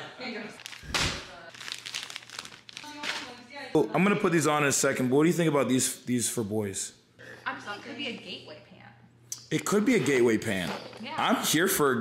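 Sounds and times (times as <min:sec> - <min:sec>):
plastic bag crinkling: 0:00.4 - 0:03.5.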